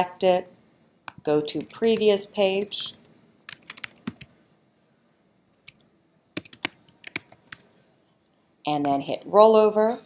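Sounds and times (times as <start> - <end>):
computer keyboard typing: 1.4 - 4.3, 5.5 - 7.7.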